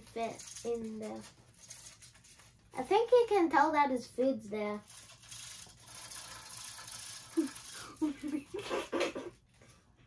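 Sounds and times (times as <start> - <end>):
steady rustling: 0.0 - 2.9
child giggling muffled: 7.4 - 9.4.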